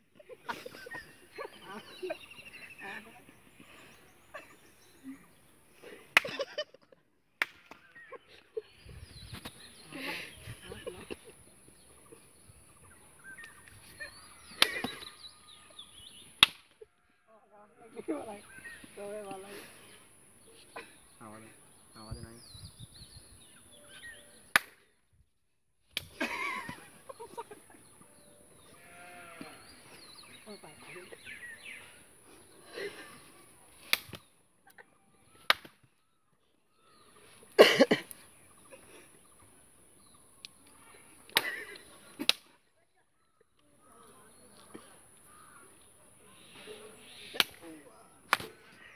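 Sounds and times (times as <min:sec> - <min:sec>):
hands slapping: 0:06.2 - 0:06.5, 0:07.4 - 0:07.9, 0:14.6 - 0:15.1, 0:16.4 - 0:16.8, 0:24.5 - 0:24.8, 0:25.9 - 0:26.2, 0:33.8 - 0:34.3, 0:35.4 - 0:35.9, 0:41.3 - 0:41.6, 0:42.2 - 0:42.6, 0:47.3 - 0:47.6, 0:48.3 - 0:48.6
sharp snaps: 0:07.4 - 0:07.9, 0:14.6 - 0:15.1, 0:16.3 - 0:16.8, 0:24.5 - 0:24.9, 0:25.9 - 0:26.2, 0:33.8 - 0:34.3, 0:35.4 - 0:35.9, 0:40.4 - 0:42.6, 0:47.3 - 0:47.6, 0:48.3 - 0:48.6.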